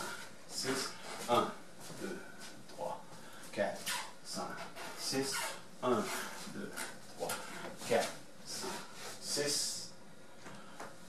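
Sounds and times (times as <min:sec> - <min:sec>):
man counting quietly: 0:00.0 - 0:10.0.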